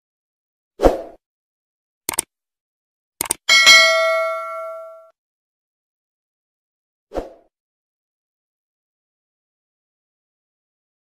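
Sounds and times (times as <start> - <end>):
double mouse click: 2.1 - 2.3, 3.2 - 3.4
notification bell ding: 3.5 - 5.1.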